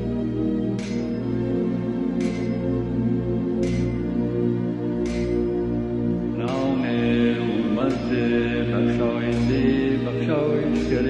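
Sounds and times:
steady low drone: 0.0s - 11.0s
voice chanting long notes: 6.2s - 11.0s.

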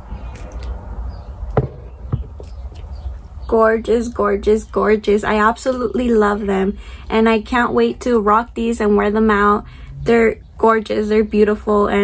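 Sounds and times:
low steady hum: 0.0s - 12.0s
soft knocks: 1.6s - 2.4s.

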